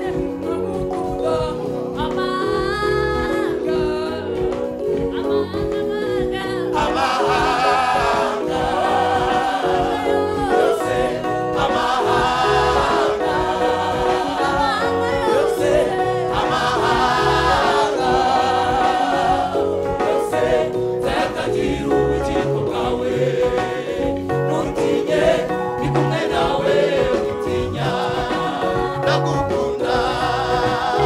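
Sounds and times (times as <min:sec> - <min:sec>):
band with keyboard and guitars: 0:00.0 - 0:31.0
choir singing gospel song: 0:00.0 - 0:31.0.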